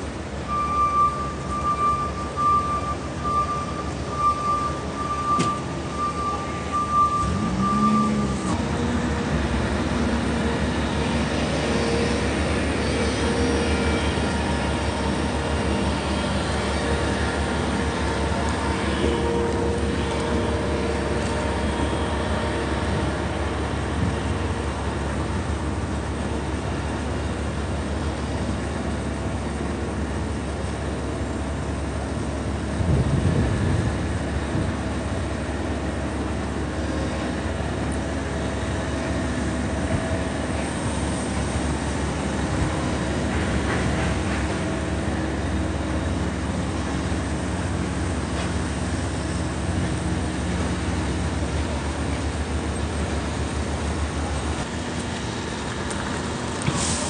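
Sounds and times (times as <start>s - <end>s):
traffic on wet street: 0.0s - 57.0s
vehicles passing: 1.2s - 57.0s.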